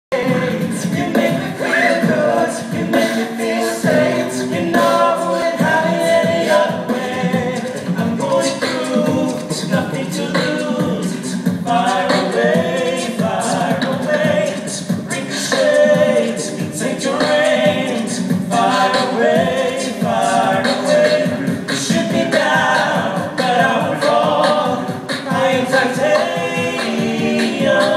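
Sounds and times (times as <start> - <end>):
a cappella group singing in harmony: 0.0 - 27.9
vocal percussion beat: 0.1 - 27.9.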